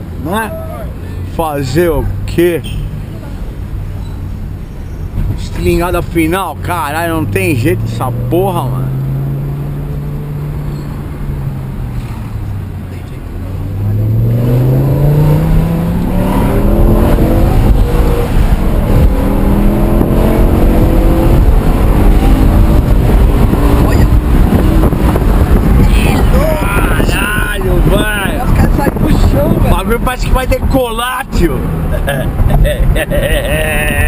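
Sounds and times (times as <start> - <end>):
car engine accelerating hard: 5.3 - 34.0.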